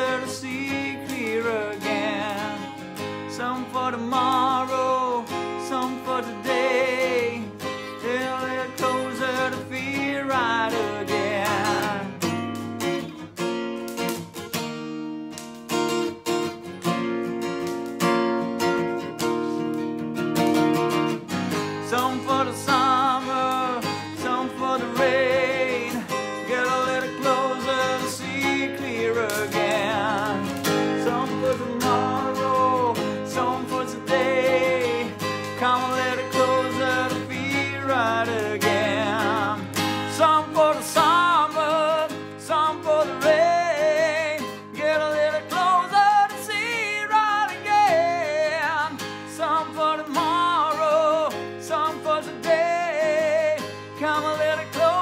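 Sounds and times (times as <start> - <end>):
man singing with vibrato: 0.0 - 12.6, 21.6 - 55.0
acoustic guitar strumming: 0.0 - 55.0.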